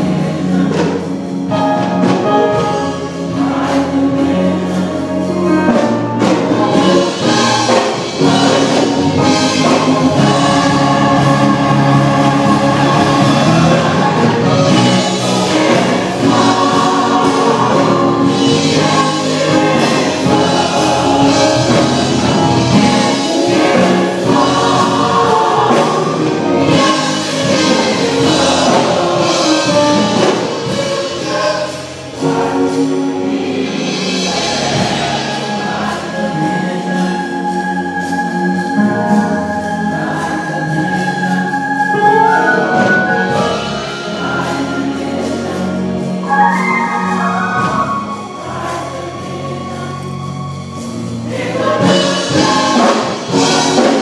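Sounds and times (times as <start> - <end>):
gospel choir singing: 0.0 - 54.0.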